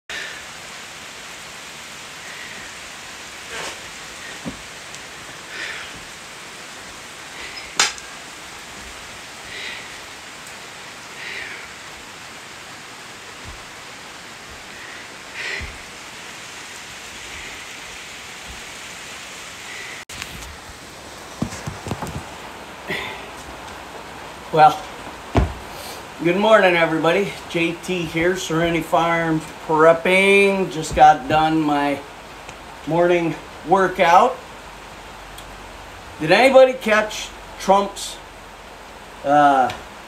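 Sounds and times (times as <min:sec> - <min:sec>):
steady hiss: 0:00.1 - 0:40.0
man breathing hard: 0:02.1 - 0:06.2, 0:07.3 - 0:08.2, 0:08.8 - 0:10.3, 0:10.9 - 0:12.5, 0:13.3 - 0:18.0.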